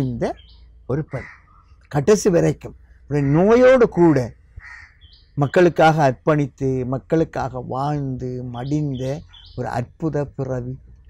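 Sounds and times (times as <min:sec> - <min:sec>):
man speaking: 0:00.0 - 0:01.3, 0:01.9 - 0:04.3, 0:05.4 - 0:10.8
crow cawing: 0:01.1 - 0:01.8, 0:03.1 - 0:05.2.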